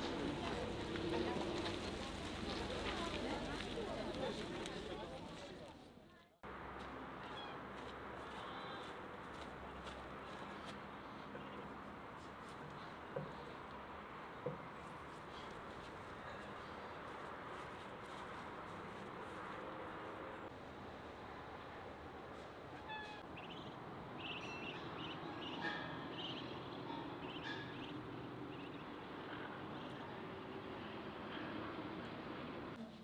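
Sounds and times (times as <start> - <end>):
faint outdoor background: 0.0 - 33.0
bird chirps: 23.4 - 28.9.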